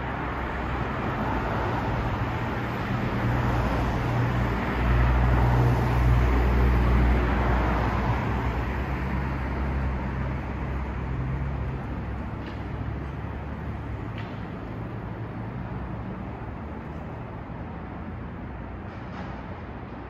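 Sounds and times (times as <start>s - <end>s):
road noise: 0.0s - 20.0s.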